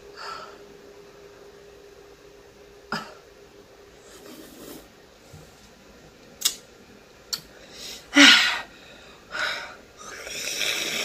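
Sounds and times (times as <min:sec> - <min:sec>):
mouth clicks and smacks: 0:06.4 - 0:06.6.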